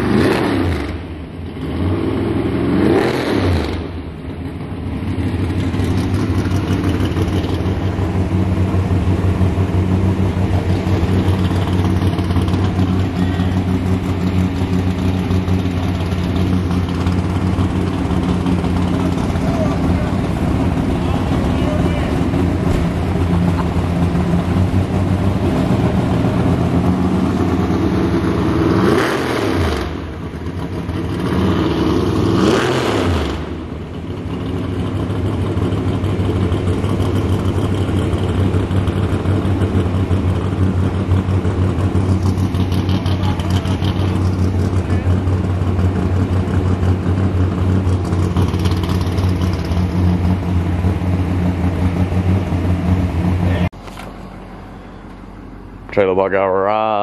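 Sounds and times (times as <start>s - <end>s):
car engine idling and revving: 0.0s - 57.0s.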